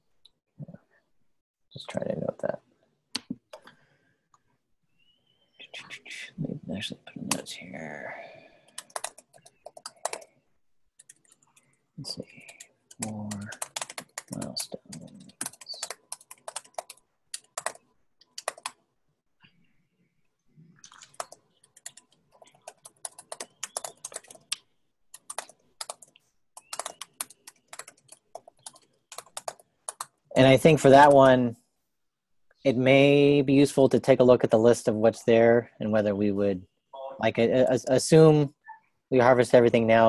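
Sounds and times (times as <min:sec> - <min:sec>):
typing on computer keyboard: 0:08.6 - 0:10.3, 0:11.0 - 0:11.7, 0:12.3 - 0:18.8, 0:20.9 - 0:30.2.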